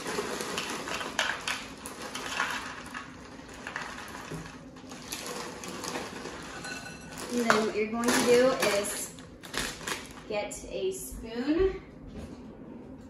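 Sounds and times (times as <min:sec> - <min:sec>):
pretzels rattling into plastic cup: 0:00.0 - 0:10.2
plastic bag crinkling: 0:00.0 - 0:10.4.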